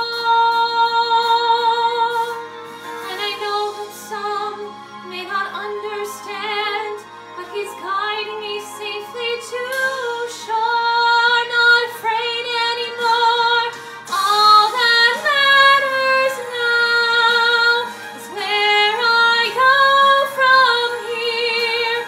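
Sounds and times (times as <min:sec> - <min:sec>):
woman singing with vibrato: 0:00.0 - 0:02.4, 0:03.0 - 0:22.0.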